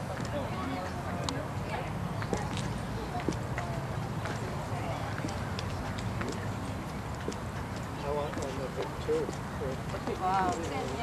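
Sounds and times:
murmur of voices: 0:00.0 - 0:11.0
footsteps on pavement: 0:02.2 - 0:11.0.

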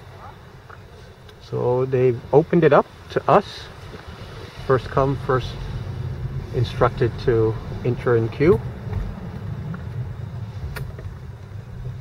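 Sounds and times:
car engine rumble inside cabin: 0:00.0 - 0:12.0.

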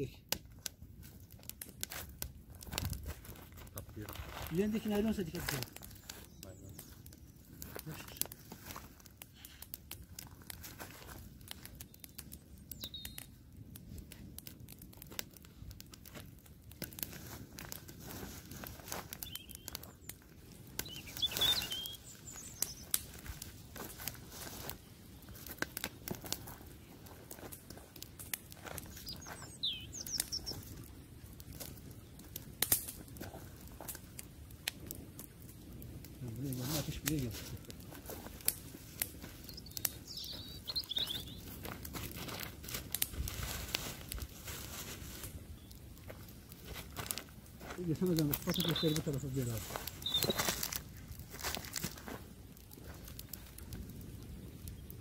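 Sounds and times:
campfire crackling and popping: 0:00.0 - 0:55.0
bird chirping: 0:12.7 - 0:13.3, 0:19.2 - 0:20.1, 0:20.8 - 0:23.0, 0:28.8 - 0:30.6, 0:39.4 - 0:41.5, 0:47.9 - 0:50.6.

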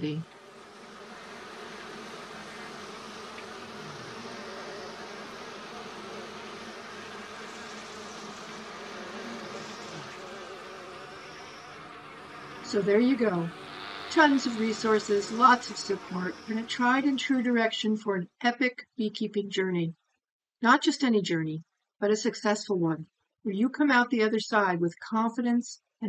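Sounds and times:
honeybees buzzing: 0:00.0 - 0:17.6.

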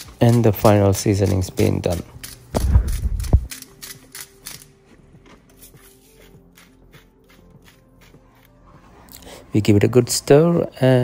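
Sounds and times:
pepper mill grinding: 0:00.0 - 0:04.7, 0:05.5 - 0:08.6.

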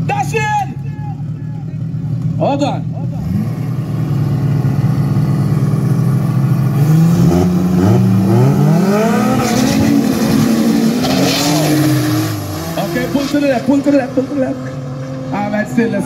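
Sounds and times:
drag car engines revving: 0:00.0 - 0:16.0.

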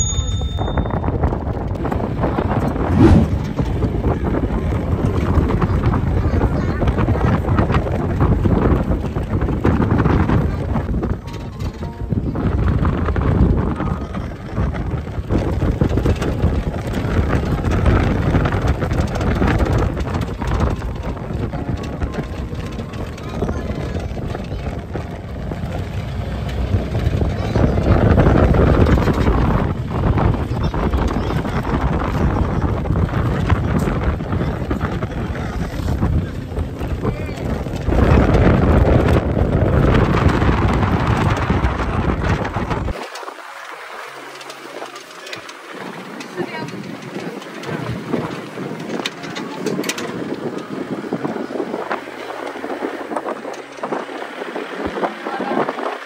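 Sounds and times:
vehicle running noise: 0:00.0 - 0:56.0
wind buffeting microphone: 0:00.0 - 0:56.0.

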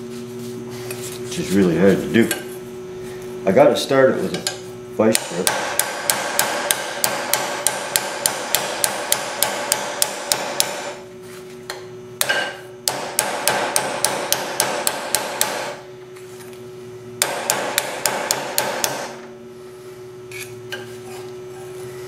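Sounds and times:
hammer tapping metal strip: 0:04.4 - 0:10.9, 0:12.2 - 0:15.8, 0:17.2 - 0:19.2.

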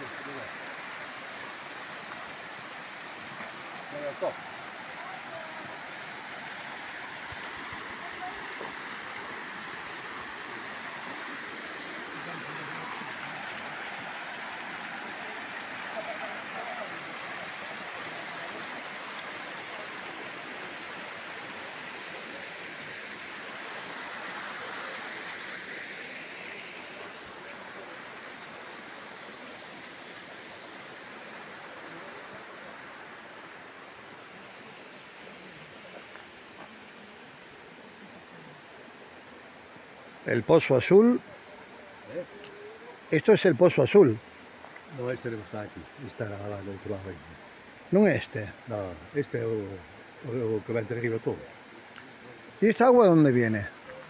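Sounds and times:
waterfall rushing over rock: 0:00.0 - 0:54.0.

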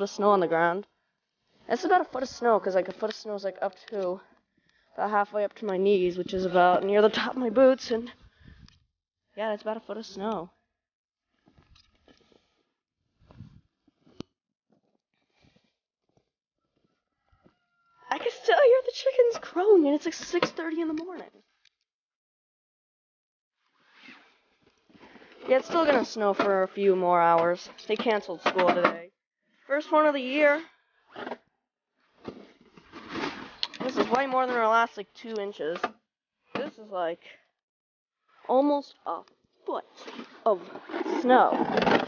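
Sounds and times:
crunching and scraping of snow: 0:39.9 - 0:41.9.

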